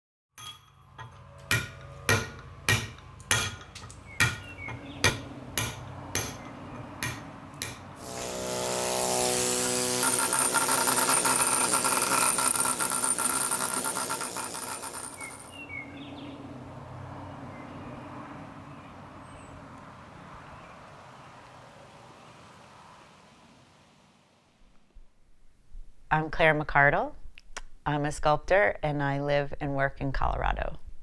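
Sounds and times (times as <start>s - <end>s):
hammer striking chisel on marble: 0.4s - 15.6s
pneumatic air chisel chattering: 8.0s - 15.6s.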